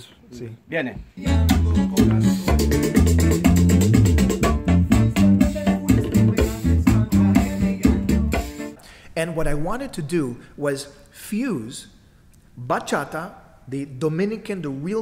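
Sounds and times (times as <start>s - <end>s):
electric bass line: 1.2s - 8.6s
latin dance music: 1.2s - 8.8s.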